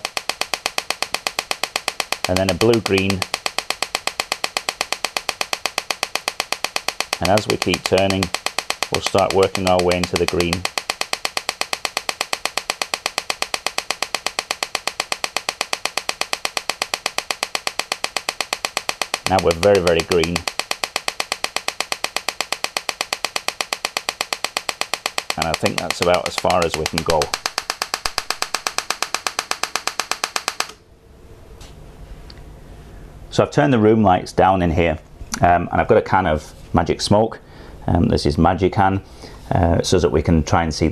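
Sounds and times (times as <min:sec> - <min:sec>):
laser electrical discharges snapping: 0:00.0 - 0:30.8.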